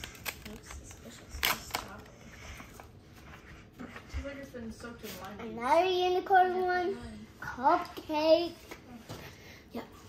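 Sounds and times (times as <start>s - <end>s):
child's voice: 5.4s - 10.0s.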